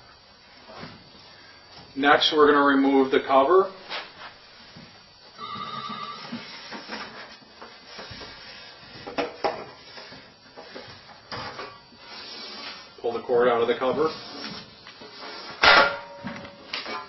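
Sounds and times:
steady high tone: 0:05.4 - 0:06.5.

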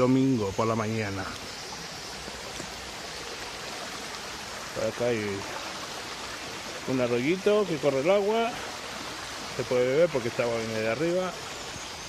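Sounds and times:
stream running: 0:00.0 - 0:12.0.

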